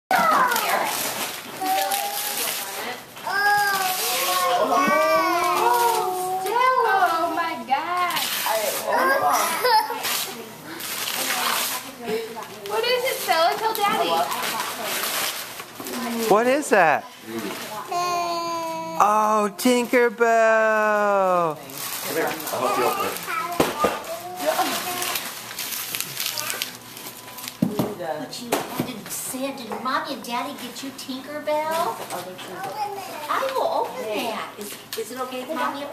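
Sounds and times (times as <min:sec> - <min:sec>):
paper rustling and crackling: 0:00.1 - 0:06.7, 0:08.2 - 0:16.4, 0:21.6 - 0:27.6
family voices talking: 0:00.1 - 0:15.0, 0:15.9 - 0:25.4
high held voice: 0:19.0 - 0:21.5.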